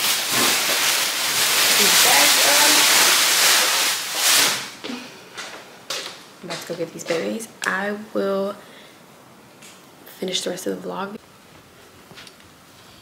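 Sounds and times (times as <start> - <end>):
loud rushing hiss: 0.0 - 4.8.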